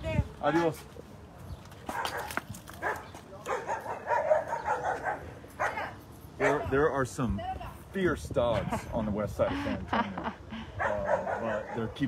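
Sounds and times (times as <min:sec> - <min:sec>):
dogs barking fiercely: 0:01.9 - 0:06.7, 0:10.8 - 0:12.0.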